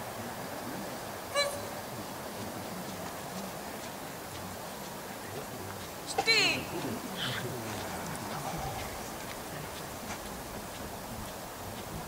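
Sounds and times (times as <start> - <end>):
wind hiss: 0.0 - 12.0.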